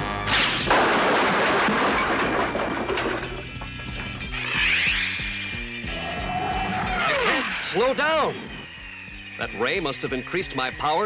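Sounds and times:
cartoon crash sound effect: 0.3s - 2.2s.

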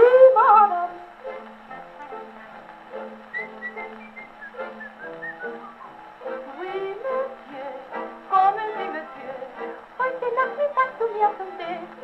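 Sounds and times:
orchestral music on gramophone: 0.0s - 12.0s.

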